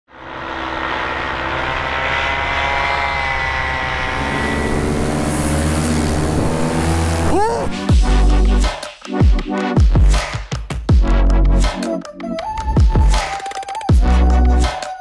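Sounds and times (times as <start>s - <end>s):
paramotor engine drone: 0.1s - 8.7s
rising electronic sweeps: 0.9s - 8.6s
music: 7.3s - 15.0s.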